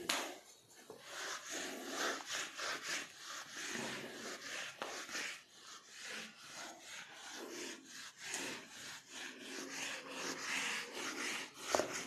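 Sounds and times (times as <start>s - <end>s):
eraser rubbing on whiteboard: 0.2s - 12.0s.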